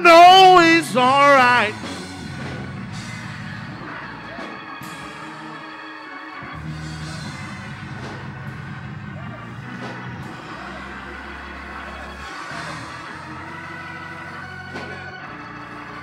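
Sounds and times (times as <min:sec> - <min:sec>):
church organ chords: 0:00.0 - 0:16.0
faint congregation voices: 0:00.0 - 0:16.0.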